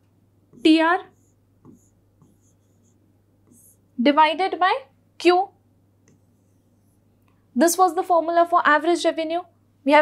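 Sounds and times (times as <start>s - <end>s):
pen scratching on whiteboard screen: 0.5s - 3.9s, 6.1s - 7.1s.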